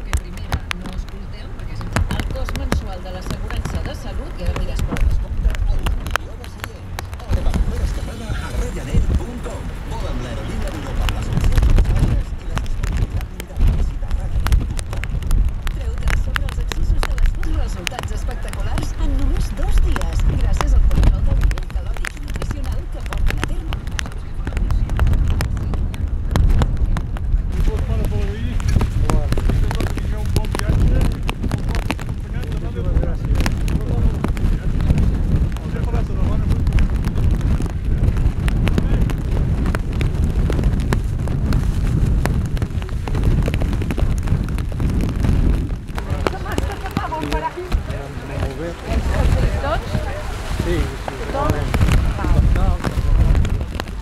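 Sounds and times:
group of people talking: 0.0 - 54.0
wind rumbling on microphone: 0.0 - 54.0.

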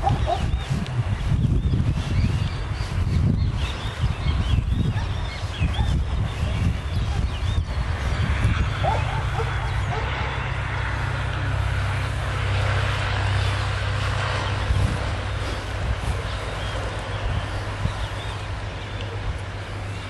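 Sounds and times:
low rumbling hum: 0.0 - 20.0.

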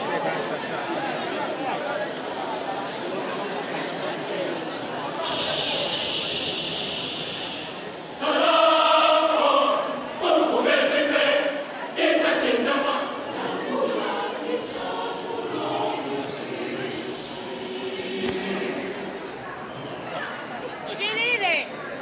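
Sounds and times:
church choir singing: 2.4 - 19.6.

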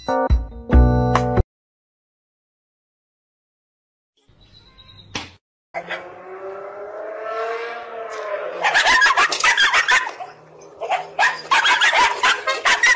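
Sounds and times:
drawn-out rising and falling cry: 5.8 - 12.9
small dog barking: 8.6 - 12.9.

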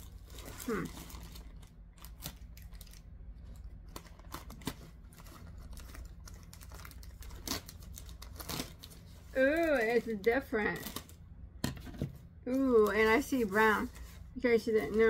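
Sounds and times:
bag crinkling and rustling: 0.0 - 11.2
low steady hum: 0.0 - 15.0.

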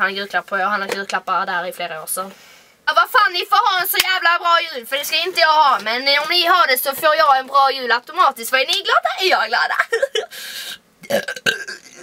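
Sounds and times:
woman's breathy hiss: 10.3 - 10.8.

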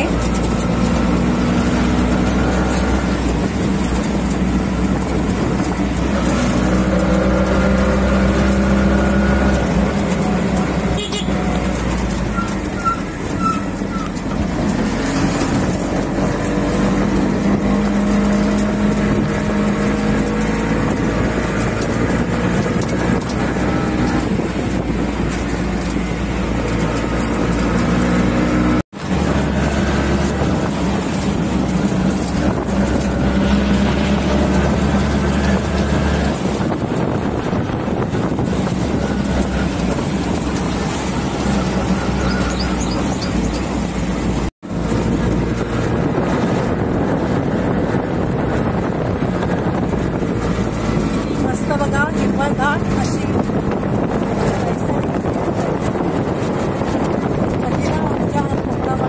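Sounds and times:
auto-rickshaw engine running: 0.0 - 59.0
road and wind noise: 0.0 - 59.0.

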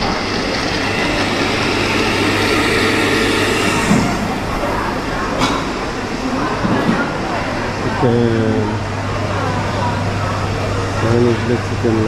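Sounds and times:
low hum: 0.0 - 6.2
crowd chatter: 0.0 - 12.0.

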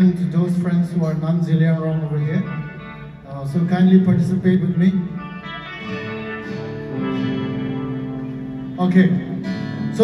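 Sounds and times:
guitar chords strummed: 2.0 - 10.0.

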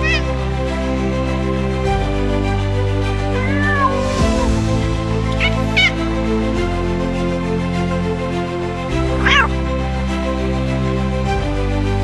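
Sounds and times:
kitten mewing: 0.0 - 0.4, 3.3 - 4.2, 5.3 - 6.1, 9.1 - 9.6
soft background music: 0.0 - 12.0.

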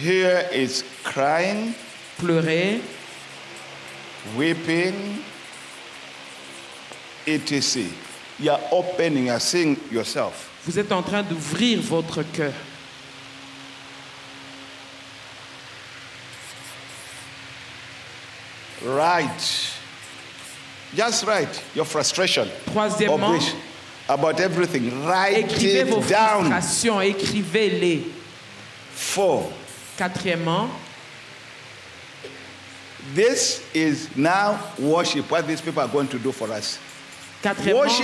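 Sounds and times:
background hiss: 0.0 - 38.0
marker writing on paper: 1.0 - 7.1, 16.3 - 17.4, 20.0 - 21.8, 36.8 - 38.0.

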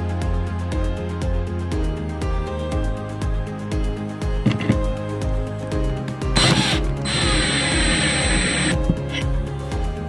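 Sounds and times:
background music with steady beat: 0.0 - 10.0
cordless drill whining: 6.4 - 9.2.

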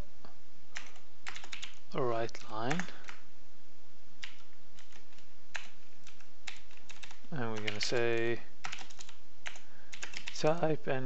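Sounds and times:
computer keyboard typing: 0.8 - 3.2, 4.2 - 10.6
person speaking: 1.9 - 3.2, 7.3 - 8.5, 10.2 - 11.0.

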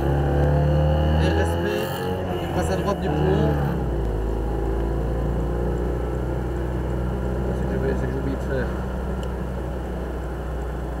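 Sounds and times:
car engine droning from cabin: 0.0 - 11.0.

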